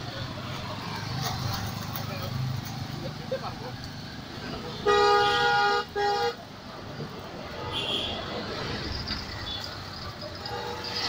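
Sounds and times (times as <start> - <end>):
street traffic noise: 0.0 - 11.0
vehicle horn blasts: 4.8 - 6.4, 7.6 - 8.2.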